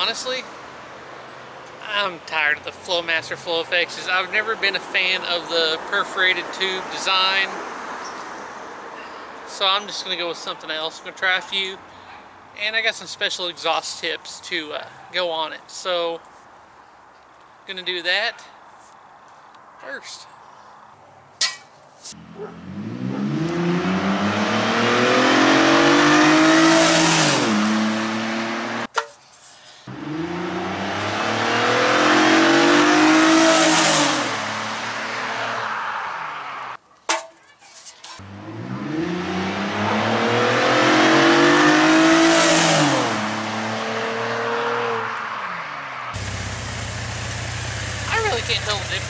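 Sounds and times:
car accelerating hard past: 0:22.6 - 0:28.9, 0:29.9 - 0:36.8, 0:38.2 - 0:46.5
car engine idling: 0:46.2 - 0:49.0.

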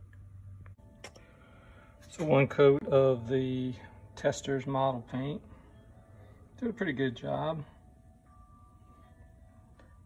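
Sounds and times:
faint thin steady tones: 0:00.0 - 0:10.0.

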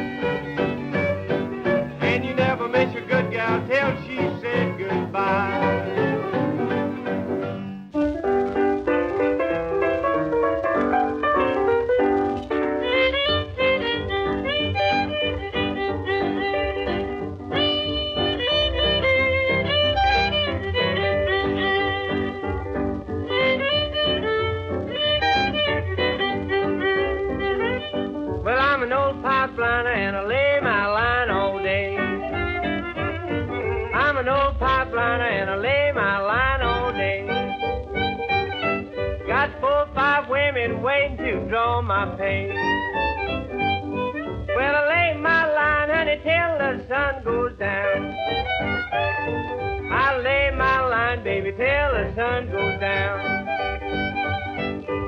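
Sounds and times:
fiddle melody: 0:00.0 - 0:55.0
string band instrumental record: 0:00.0 - 0:55.0.

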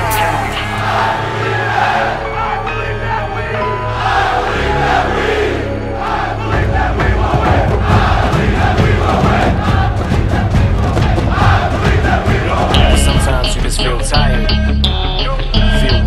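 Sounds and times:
music track with bass beat: 0:00.0 - 0:01.3, 0:07.0 - 0:16.0
crowd cheering and chanting: 0:00.0 - 0:16.0.

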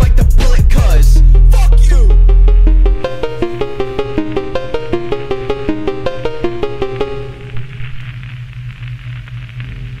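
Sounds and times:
low electrical hum: 0:02.3 - 0:10.0
static hiss with crackle: 0:03.0 - 0:10.0.

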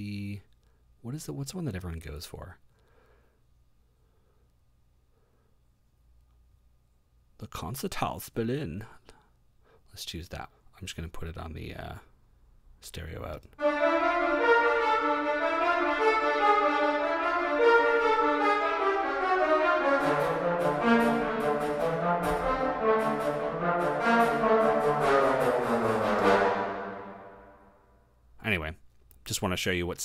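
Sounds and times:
orchestral brass melody: 0:13.6 - 0:27.9
low brass: 0:13.6 - 0:28.0.

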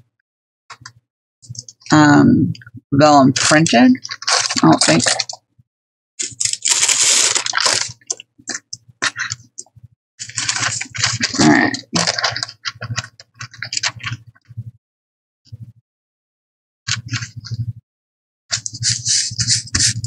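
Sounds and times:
paper rustling and crinkling: 0:04.0 - 0:05.4, 0:06.2 - 0:09.5, 0:10.2 - 0:14.2, 0:18.5 - 0:20.0.

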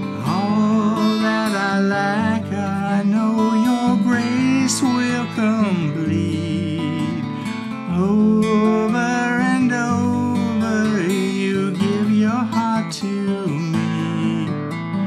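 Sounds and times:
acoustic guitar strumming: 0:00.0 - 0:15.0
man singing: 0:00.0 - 0:15.0.

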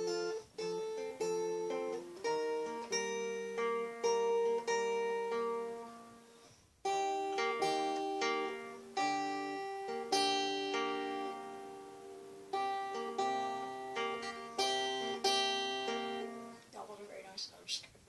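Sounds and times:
finger-picked acoustic guitar: 0:00.0 - 0:17.2.

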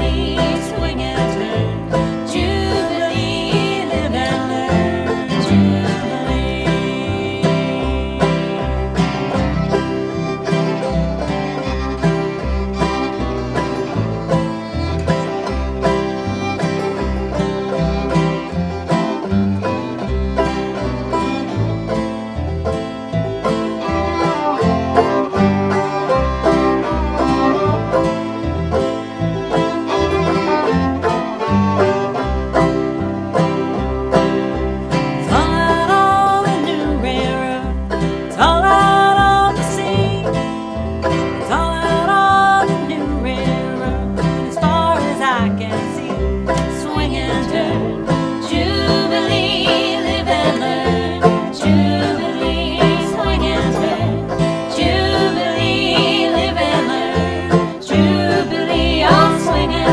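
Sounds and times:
acoustic guitar: 0:00.0 - 0:59.9
plucked upright bass: 0:00.0 - 0:59.9.

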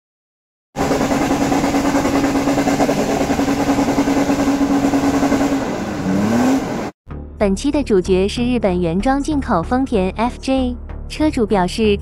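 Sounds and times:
engine at high revs: 0:00.8 - 0:07.0
tyres churning through dirt: 0:00.8 - 0:07.0.

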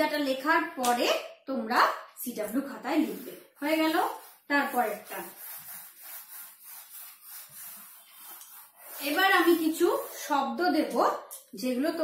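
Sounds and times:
eraser rubbing on whiteboard: 0:02.8 - 0:10.5.

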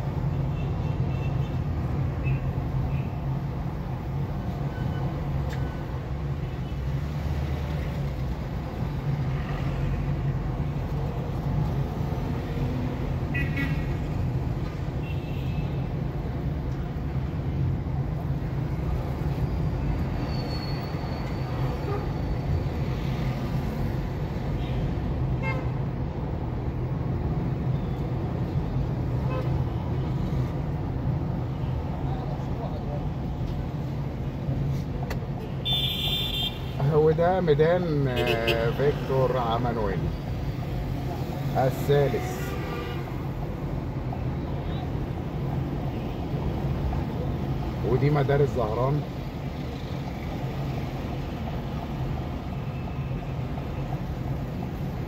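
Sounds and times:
road noise: 0:00.0 - 0:55.0.

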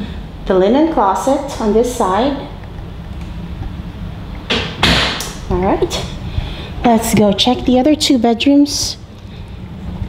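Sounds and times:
low rumble of handheld camera: 0:00.0 - 0:10.0.

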